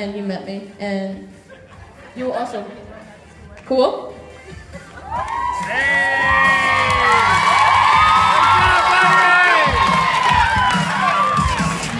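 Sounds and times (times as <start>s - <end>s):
children screaming and cheering: 5.0s - 11.9s.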